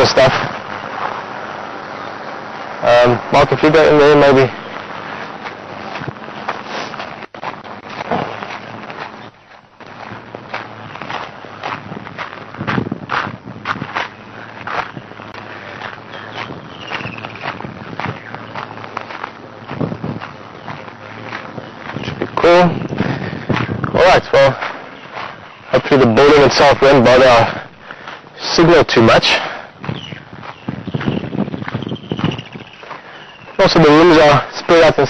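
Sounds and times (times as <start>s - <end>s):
footsteps crunching on sandy dirt: 0.0s - 35.0s
rustling: 4.1s - 23.9s.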